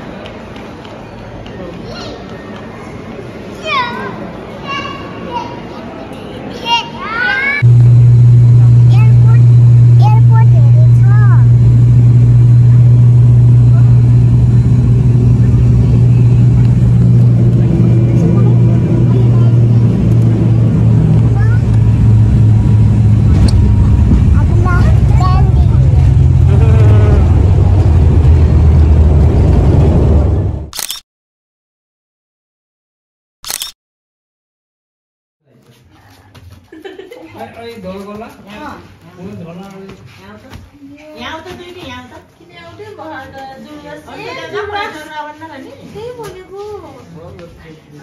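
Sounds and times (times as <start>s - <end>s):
children's voices: 1.7s - 7.6s, 18.1s - 20.3s, 21.2s - 21.8s, 24.3s - 26.7s
airliner engine drone in cabin: 7.6s - 30.7s.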